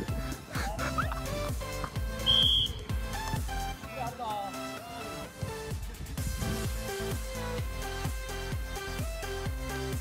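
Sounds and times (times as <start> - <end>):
music with deep bass beat: 0.0 - 10.0
referee's whistle blast: 2.2 - 2.8.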